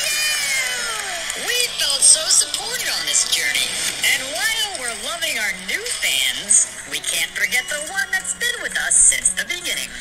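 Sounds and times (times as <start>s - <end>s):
background music: 0.0s - 10.0s
person talking: 0.5s - 10.0s.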